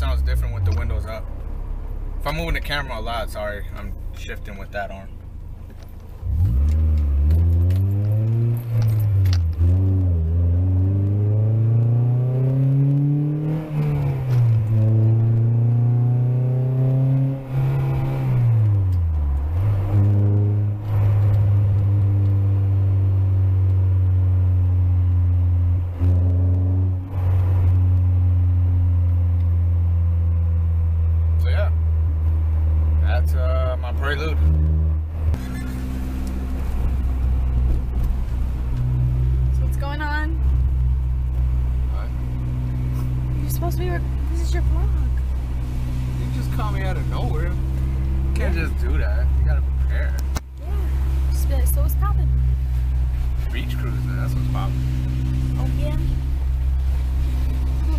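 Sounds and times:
car engine revving through gears: 0:05.7 - 0:57.9.

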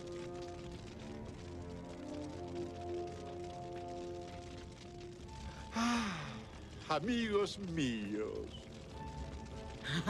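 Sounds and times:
person gasping: 0:05.7 - 0:06.4
person's voice: 0:06.8 - 0:08.6.

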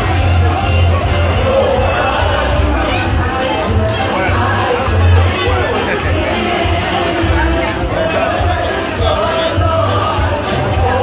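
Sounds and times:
chatter of many voices: 0:00.0 - 0:11.0
music with heavy bass: 0:00.0 - 0:11.0.

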